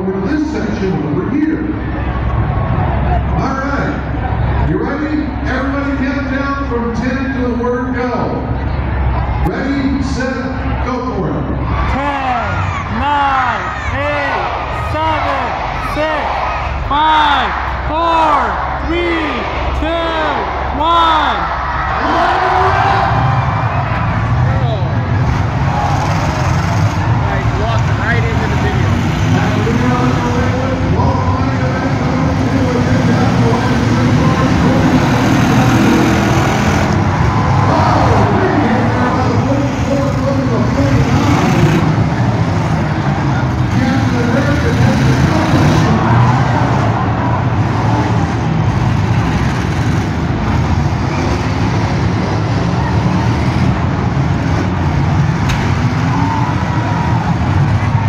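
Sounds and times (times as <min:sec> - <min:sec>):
car engines revving: 0:00.0 - 0:58.0
crowd voices: 0:00.0 - 0:58.0.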